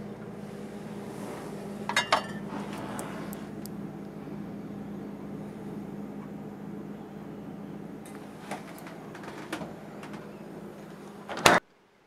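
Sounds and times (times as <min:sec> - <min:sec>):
refrigerator humming: 0:00.0 - 0:11.6.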